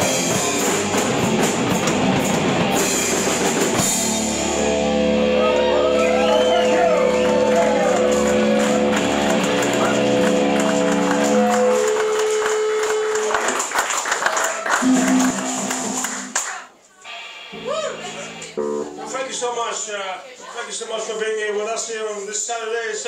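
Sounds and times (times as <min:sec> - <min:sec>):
rock band final chord: 0:00.0 - 0:12.1, 0:14.8 - 0:16.3, 0:17.6 - 0:19.5
audience clapping and cheering: 0:05.3 - 0:16.8.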